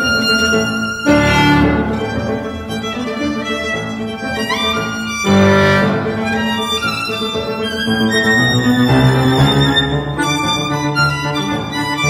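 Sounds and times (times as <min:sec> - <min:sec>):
chamber ensemble playing: 0:00.0 - 0:12.0
violin: 0:00.0 - 0:12.0.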